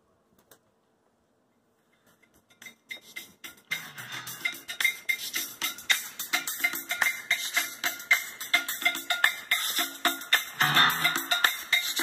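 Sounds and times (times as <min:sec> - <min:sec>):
music with clicky percussive beat: 0:02.2 - 0:12.0.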